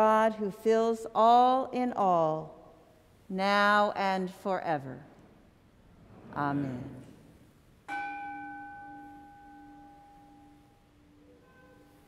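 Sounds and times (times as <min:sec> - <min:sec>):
bell ringing: 0:07.9 - 0:12.0.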